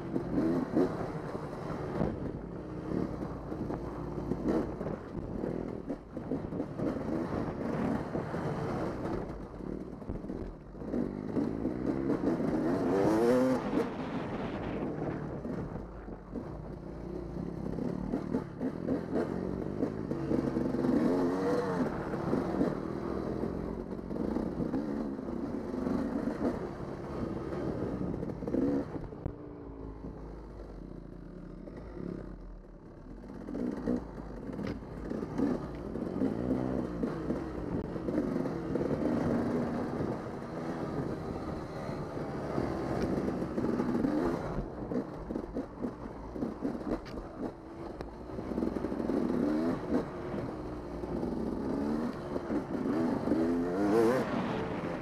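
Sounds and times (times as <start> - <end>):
dirt bike engine revving: 10.9 - 15.6, 33.4 - 55.0.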